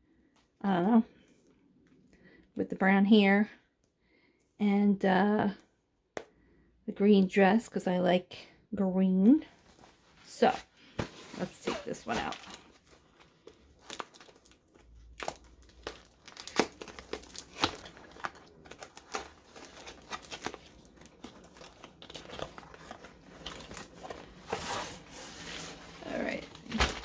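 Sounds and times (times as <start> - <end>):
packaging crinkling and rustling: 9.6 - 27.0.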